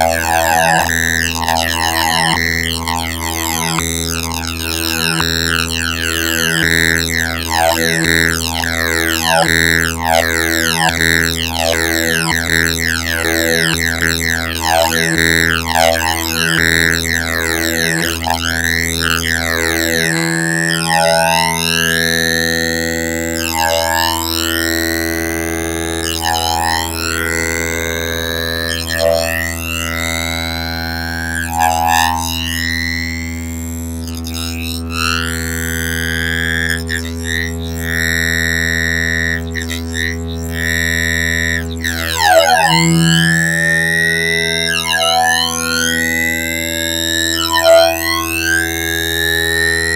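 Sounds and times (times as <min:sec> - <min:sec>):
phased synthesizer drone: 0:00.0 - 0:23.0, 0:37.0 - 0:49.9.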